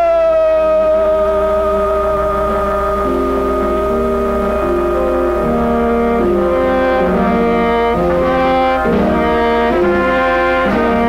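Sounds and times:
live rock band music: 1.4s - 11.0s.

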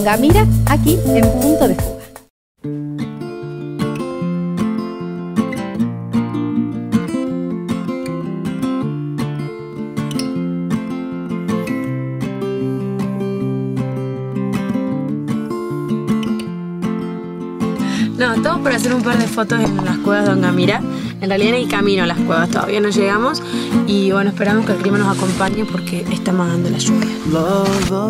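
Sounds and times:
acoustic guitar chords: 0.0s - 28.0s.

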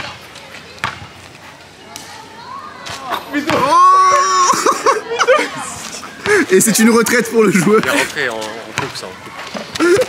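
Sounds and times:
basketball bouncing on asphalt: 0.0s - 1.3s, 3.4s - 3.7s, 6.2s - 10.0s
man shouting oh: 3.5s - 4.6s.

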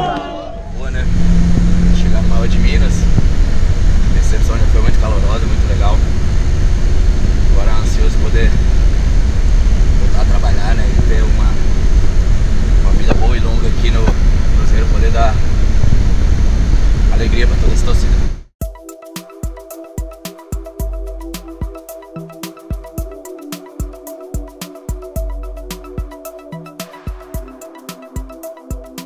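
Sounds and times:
coach engine and road rumble: 0.0s - 18.5s.

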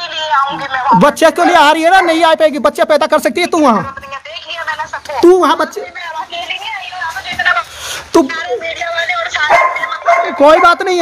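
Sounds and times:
agitated voices arguing on phone: 0.0s - 11.0s.

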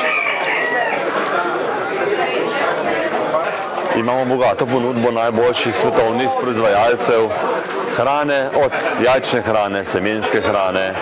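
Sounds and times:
rooster crowing: 0.0s - 1.1s
people chattering: 0.0s - 11.0s.

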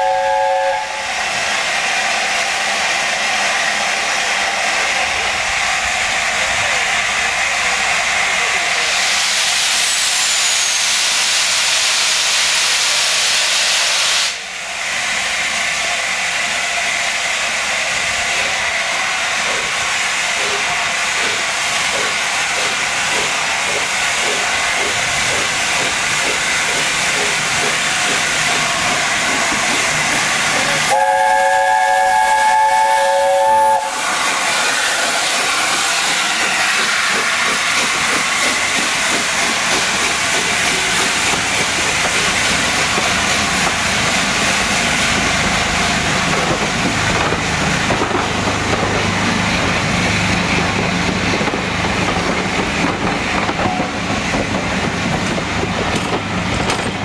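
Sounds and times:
steam train chime whistle: 0.0s - 1.1s, 30.9s - 34.1s
steam locomotive hissing: 0.0s - 57.0s.

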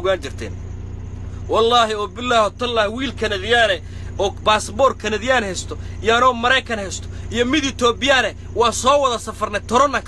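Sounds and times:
man talking: 0.0s - 0.6s, 1.4s - 10.0s
vehicle engine idling: 0.0s - 10.0s.

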